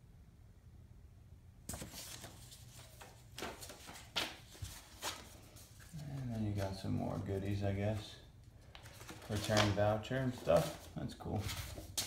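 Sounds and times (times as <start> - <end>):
paper rustling: 1.7 - 12.0.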